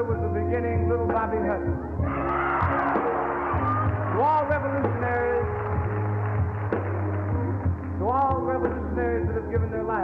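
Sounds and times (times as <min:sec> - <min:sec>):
band backing music: 0:00.0 - 0:10.0
audience cheering and yelling: 0:01.9 - 0:07.9.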